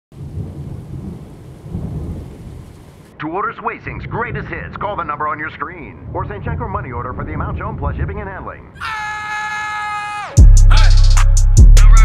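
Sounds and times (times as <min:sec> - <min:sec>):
steady rain: 0:00.1 - 0:03.2
thunder rumbling: 0:00.1 - 0:03.2, 0:03.9 - 0:08.8.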